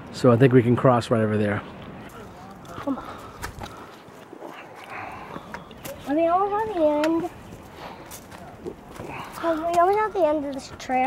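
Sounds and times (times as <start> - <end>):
footsteps on dirt and leaves: 2.0 - 10.8.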